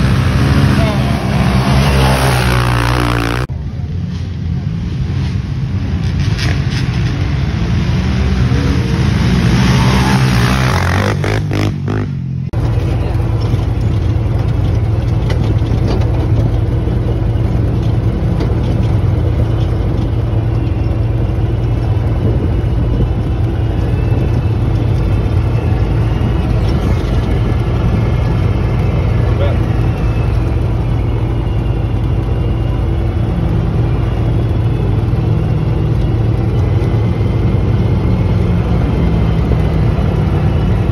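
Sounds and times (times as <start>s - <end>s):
engine revving and running: 0.0s - 3.6s, 5.0s - 40.9s.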